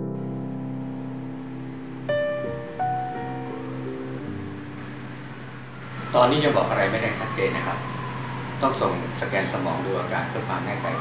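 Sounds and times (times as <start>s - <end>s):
held keyboard notes: 0.0s - 6.1s.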